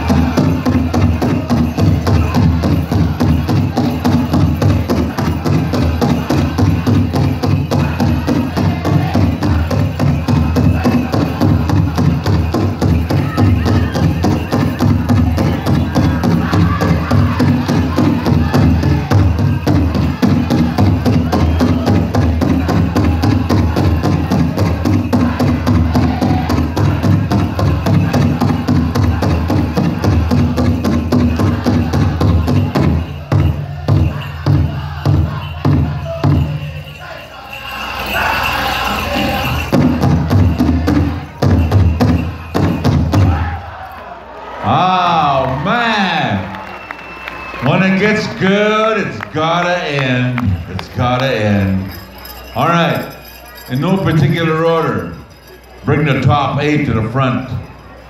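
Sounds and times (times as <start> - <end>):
large drum beating: 0.0 - 36.7, 39.4 - 43.6
group singing: 0.0 - 44.2.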